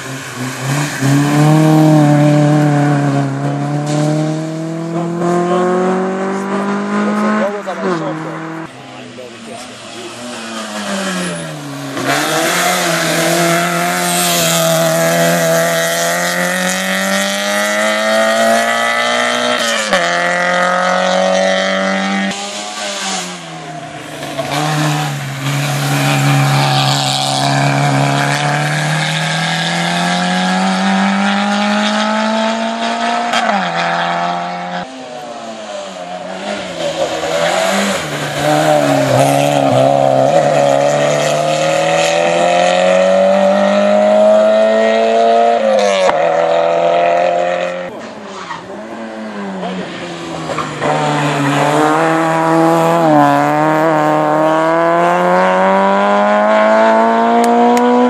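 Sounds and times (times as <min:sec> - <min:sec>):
rally car engines revving: 0:00.0 - 0:58.0.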